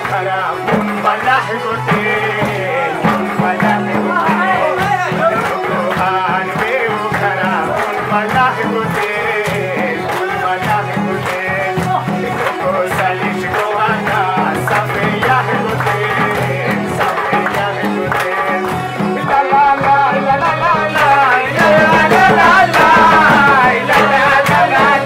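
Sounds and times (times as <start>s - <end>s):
drum struck in regular rhythm: 0.0s - 25.0s.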